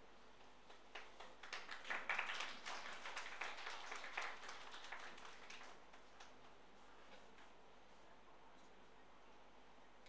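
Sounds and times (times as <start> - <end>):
hands clapping: 0.6 - 6.5.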